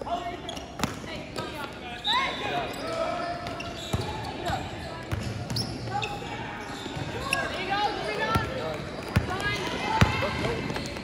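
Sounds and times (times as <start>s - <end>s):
basketball bouncing on court: 3.4s - 6.1s, 8.3s - 11.0s.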